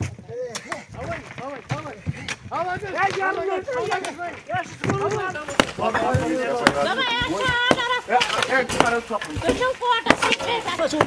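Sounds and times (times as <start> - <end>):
men's voices: 0.0 - 11.0
metal tools knocking concrete: 3.9 - 11.0.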